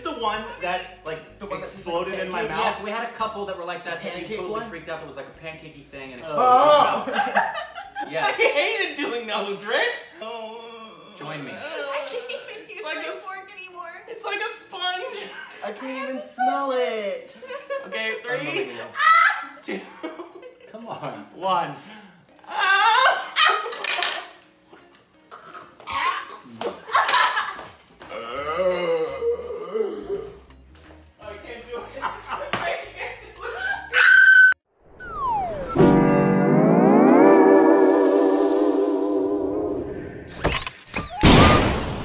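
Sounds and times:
short rising whistle: 34.4 - 41.2
loud cartoon crash: 34.9 - 42.0.

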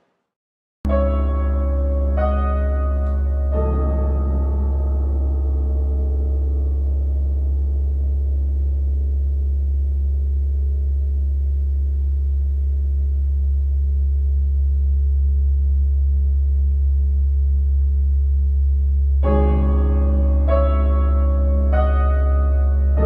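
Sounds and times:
ringing gong-like tones: 0.9 - 11.3
low sustained drone: 0.9 - 16.4, 19.0 - 23.0.

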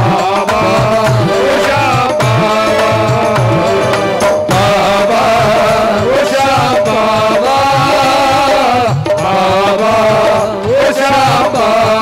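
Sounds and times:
devotional music accompaniment: 0.0 - 12.0.

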